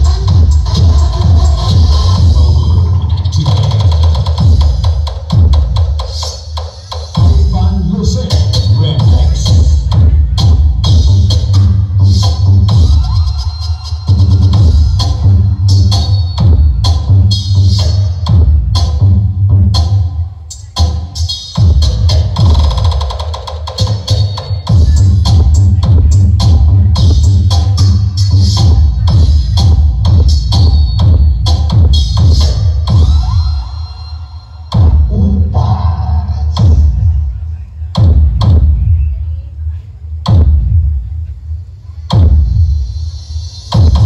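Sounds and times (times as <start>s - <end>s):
loud electronic dance music: 0.0s - 39.3s, 40.2s - 41.0s, 42.1s - 44.0s.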